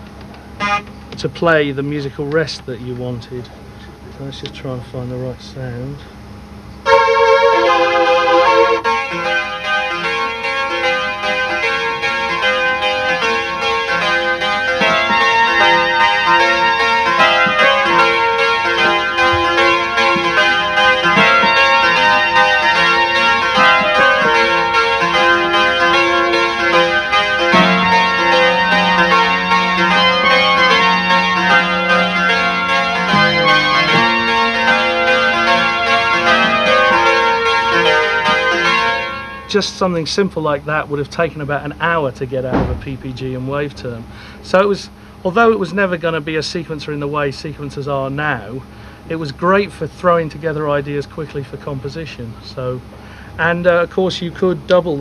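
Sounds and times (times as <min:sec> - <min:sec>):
low held synthesizer note: 0:05.5 - 0:37.9.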